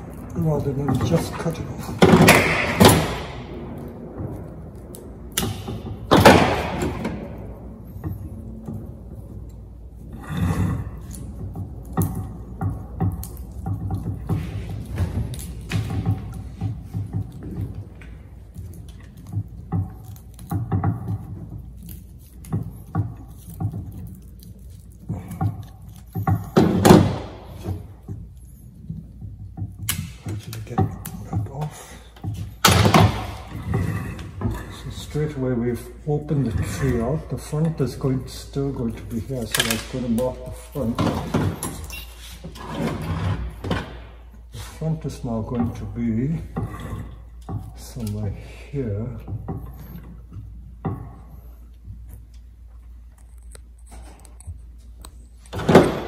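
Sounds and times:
sharp knocks: 0:00.7 - 0:28.2.

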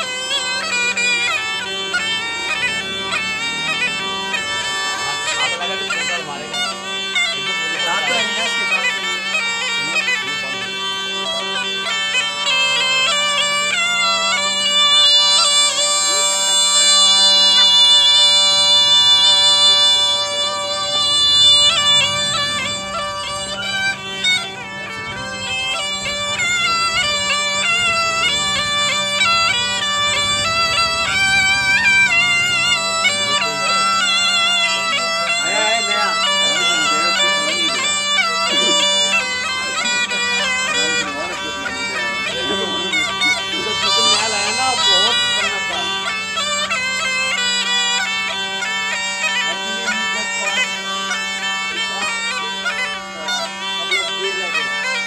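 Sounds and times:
double-reed pipe melody over drone: 0:00.0 - 0:55.0.

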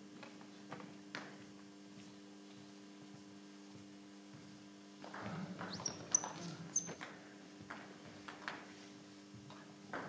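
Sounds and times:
shoes squeaking on wooden floor: 0:05.3 - 0:07.1.

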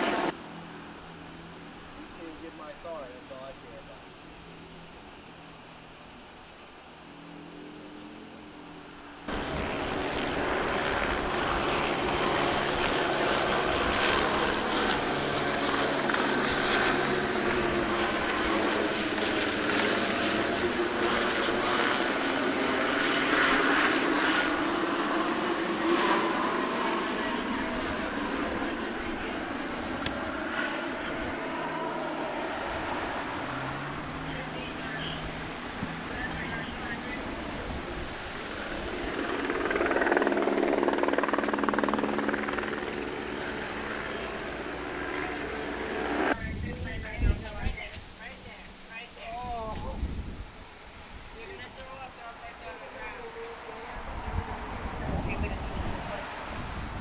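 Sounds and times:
aircraft engine overhead: 0:00.0 - 0:57.0.

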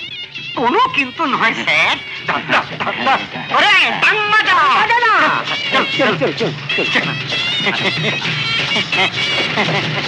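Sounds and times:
band music: 0:00.0 - 0:10.0.

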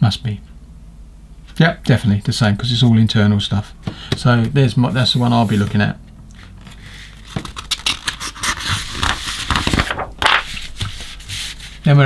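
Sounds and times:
page turning swish: 0:06.6 - 0:11.7
paper pages rustling: 0:06.6 - 0:11.8.

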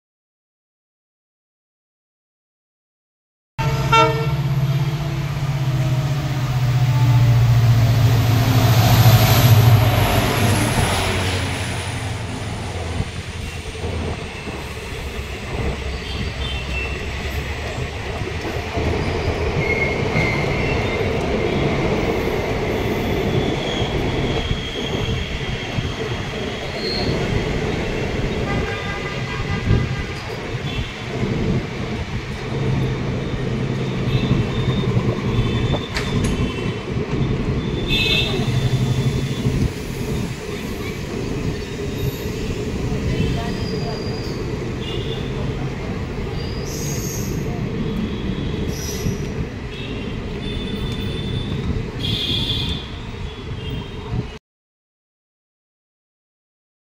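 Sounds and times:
diesel locomotive engine hum: 0:03.6 - 0:54.3
train wheels rumbling and clattering: 0:04.5 - 0:53.2.

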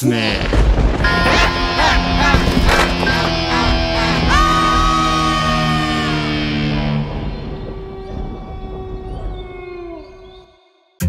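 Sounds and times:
low rumble: 0:00.5 - 0:10.4
long howl: 0:01.1 - 0:10.6.

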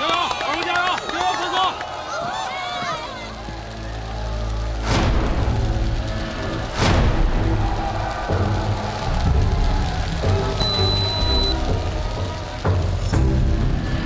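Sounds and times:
low sustained dramatic score: 0:03.3 - 0:14.0
heavy musical hits: 0:04.6 - 0:14.0.

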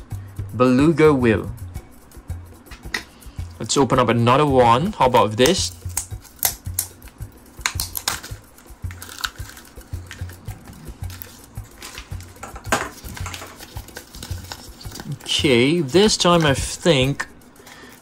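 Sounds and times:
plastic capsule clicks and snaps: 0:05.4 - 0:07.0, 0:07.6 - 0:08.4
plastic bag and paper handling: 0:12.9 - 0:15.4.

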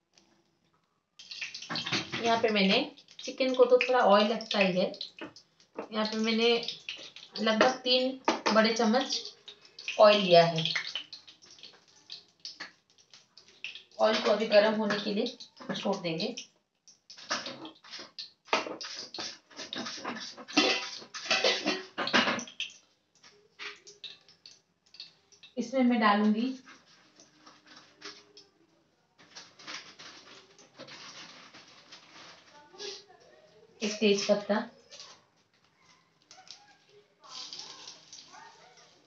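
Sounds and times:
oil crackling in a pan: 0:00.0 - 0:33.2, 0:33.8 - 0:39.0.

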